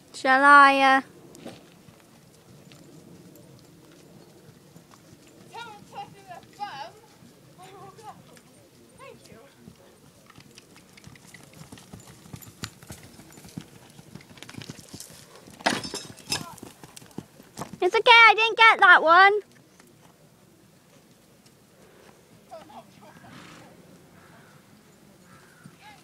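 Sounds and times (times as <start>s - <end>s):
horse hoofbeats on sand: 1.4s - 18.0s.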